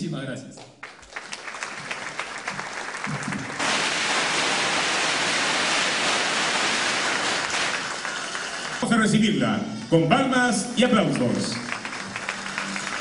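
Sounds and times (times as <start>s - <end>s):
audience applauding: 0.8s - 9.2s, 10.7s - 13.0s.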